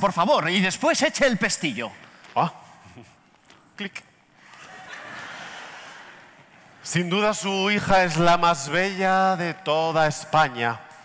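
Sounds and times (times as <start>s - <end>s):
audience laughing softly: 4.4s - 6.8s.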